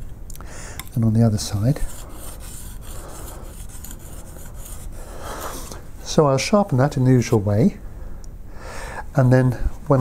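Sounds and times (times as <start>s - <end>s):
chisel scraping on oilstone: 1.7s - 5.0s.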